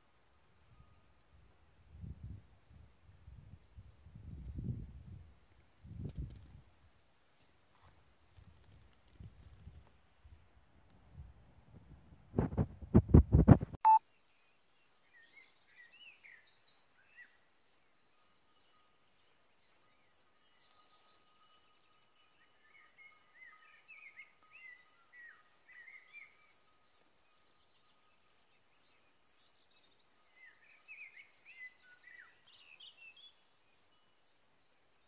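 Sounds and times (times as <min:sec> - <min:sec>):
insect chirping: 0:13.9 - 0:35.0.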